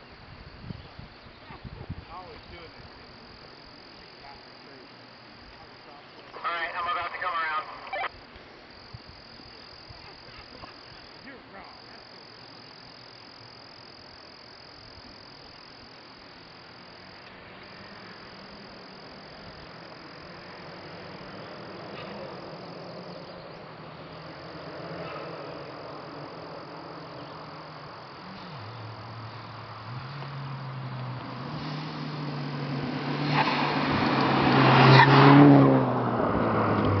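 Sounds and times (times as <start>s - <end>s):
car engine approaching: 8.7s - 37.0s.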